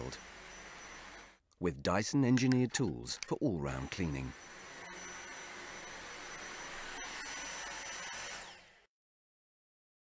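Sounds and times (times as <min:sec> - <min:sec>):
vacuum cleaner suction whine: 0:00.0 - 0:01.4, 0:03.6 - 0:08.9.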